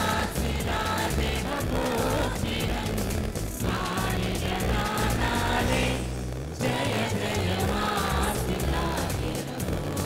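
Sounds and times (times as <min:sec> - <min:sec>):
mixed choir singing: 0:00.0 - 0:10.0.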